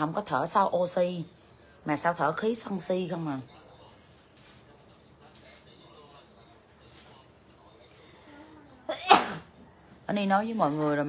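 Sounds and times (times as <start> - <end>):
person sneezing: 8.9 - 9.5.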